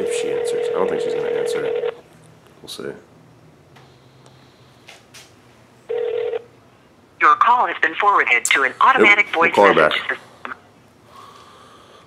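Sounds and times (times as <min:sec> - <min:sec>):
automated voicemail message: 0:00.0 - 0:01.9, 0:07.2 - 0:10.2
electronic phone tone: 0:00.0 - 0:02.0, 0:05.9 - 0:06.4
low steady phone line hum: 0:00.0 - 0:12.0.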